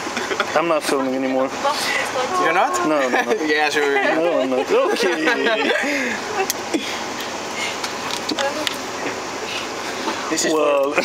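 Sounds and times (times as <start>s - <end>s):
bus interior noise: 0.0s - 11.0s
faint voices: 0.6s - 11.0s.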